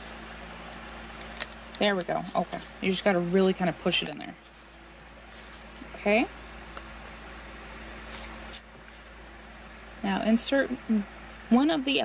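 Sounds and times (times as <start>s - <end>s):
low room hum: 0.0s - 12.0s
faint rustle: 4.4s - 6.0s.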